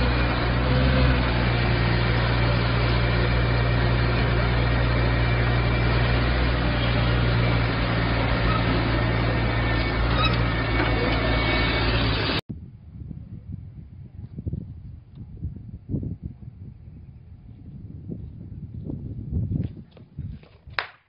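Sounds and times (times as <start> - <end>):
diesel engine humming: 0.0 - 12.4.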